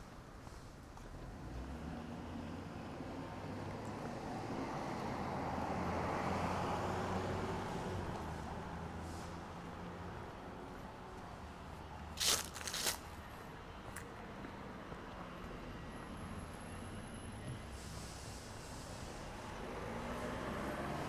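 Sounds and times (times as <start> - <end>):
low traffic hum: 0.0 - 21.0
car approaching: 0.4 - 12.2, 14.3 - 21.0.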